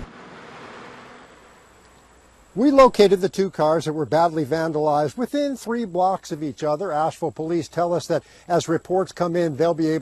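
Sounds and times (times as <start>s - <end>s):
street ambience hiss: 0.0s - 10.0s.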